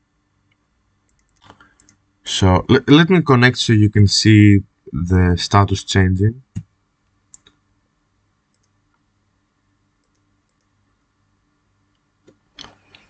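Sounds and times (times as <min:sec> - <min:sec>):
computer mouse clicks: 0:00.5 - 0:02.0, 0:07.3 - 0:07.6, 0:08.5 - 0:09.0, 0:10.0 - 0:10.7.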